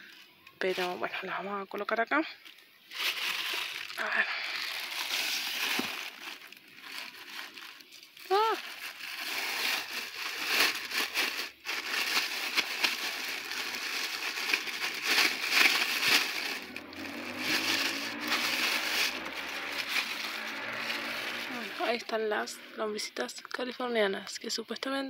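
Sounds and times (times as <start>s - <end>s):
plastic bag rustling: 2.5s - 22.5s.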